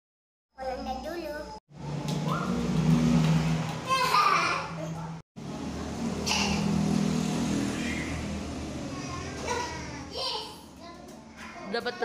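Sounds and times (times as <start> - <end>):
vehicle engine humming: 1.7 - 11.4.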